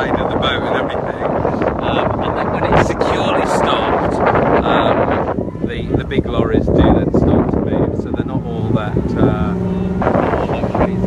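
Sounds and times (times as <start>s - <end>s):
diesel lorry engine working hard: 0.0s - 11.0s
wind buffeting microphone: 0.0s - 11.0s.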